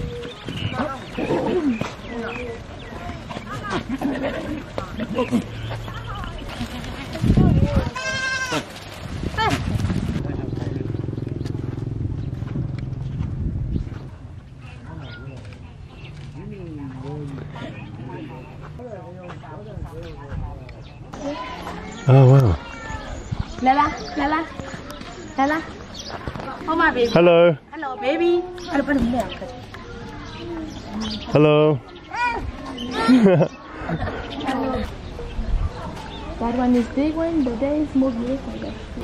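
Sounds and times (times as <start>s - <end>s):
outdoor background noise: 0.0s - 39.0s
goats bleating: 7.8s - 8.7s
brief low rumble: 10.1s - 14.7s
steady low hum: 10.2s - 19.6s.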